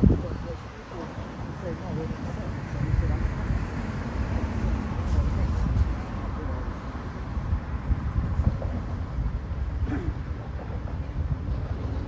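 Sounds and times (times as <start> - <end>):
faint voices: 0.0 - 9.0, 9.6 - 12.0
road traffic rumble: 0.0 - 12.0
wind buffeting microphone: 0.0 - 12.0.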